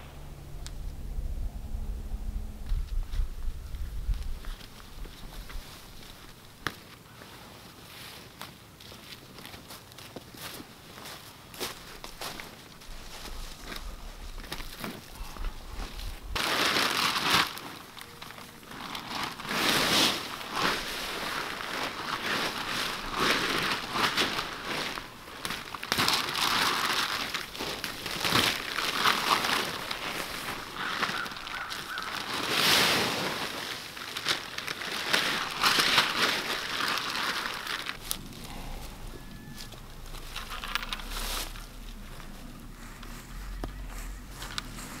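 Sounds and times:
leaves crunching underfoot: 0:02.9 - 0:45.0
tarp crinkling: 0:09.3 - 0:45.0.

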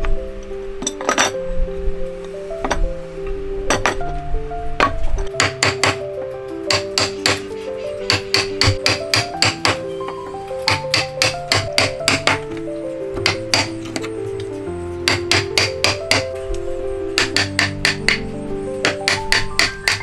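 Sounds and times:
background music with held notes: 0:00.0 - 0:20.0
chisel struck chopping wood: 0:05.4 - 0:06.0, 0:06.7 - 0:07.4, 0:08.1 - 0:09.8, 0:10.7 - 0:12.4, 0:13.2 - 0:13.7, 0:15.1 - 0:16.3, 0:17.2 - 0:18.2, 0:18.8 - 0:20.0.

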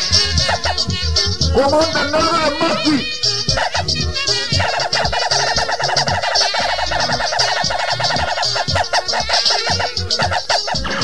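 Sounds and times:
kick drum beat: 0:00.0 - 0:11.0.

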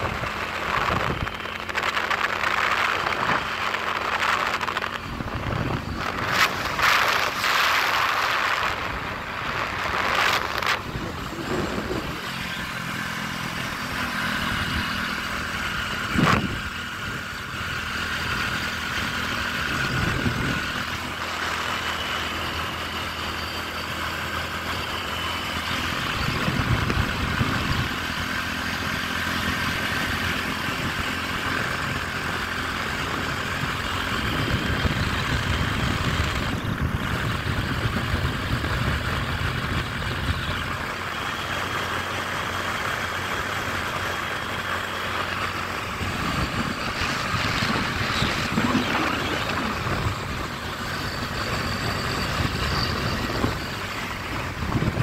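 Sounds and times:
wind rumbling on microphone: 0:00.0 - 0:41.0, 0:43.2 - 0:55.0
motorcycle engine cruising: 0:00.0 - 0:55.0.

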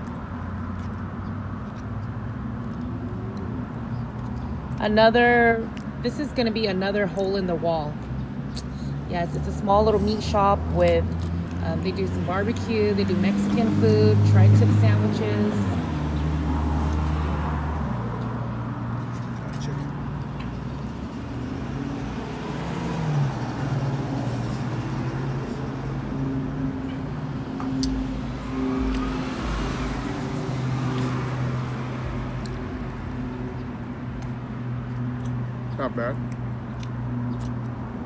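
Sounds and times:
vehicle engine humming: 0:00.0 - 0:38.0
car passing by: 0:21.3 - 0:32.6.

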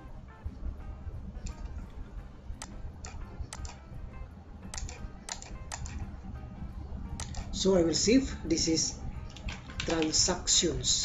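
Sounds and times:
low steady hum: 0:00.0 - 0:11.0
mouse and keyboard clicks: 0:02.6 - 0:03.8, 0:04.7 - 0:06.0, 0:07.2 - 0:07.6.

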